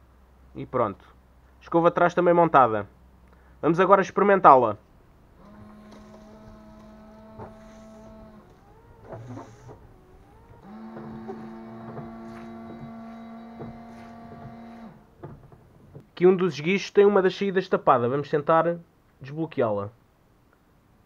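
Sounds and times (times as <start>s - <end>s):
windscreen washer pump whine: 5.2s - 16.0s.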